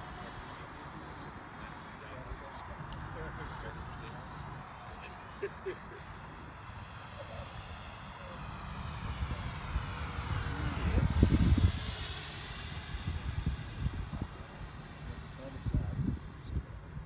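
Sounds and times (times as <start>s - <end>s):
model jet fan whining: 0.0s - 17.0s.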